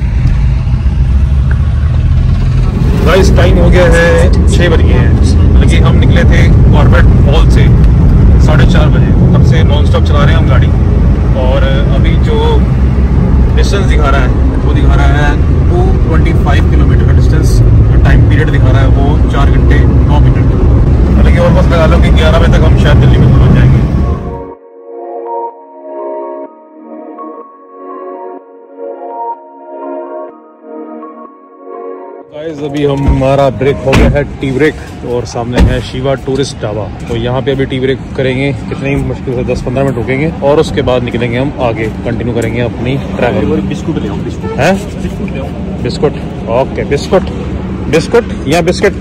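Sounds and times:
car engine and road noise: 0.0 - 24.6, 28.2 - 49.0
voices talking: 32.3 - 49.0.

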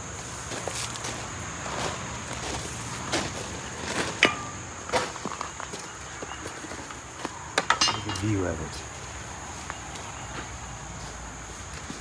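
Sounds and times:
footsteps on gravel: 0.3 - 8.4.

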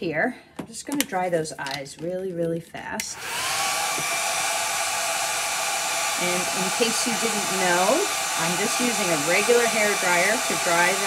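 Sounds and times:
hair dryer blowing: 3.1 - 11.0.

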